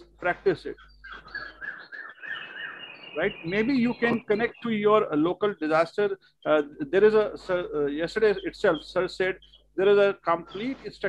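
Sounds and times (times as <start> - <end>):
bird chirping: 0.0 - 11.0.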